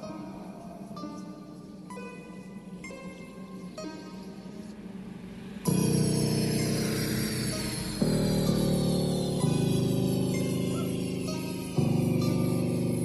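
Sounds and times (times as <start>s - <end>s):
bass-heavy music on a speaker: 0.0s - 13.0s.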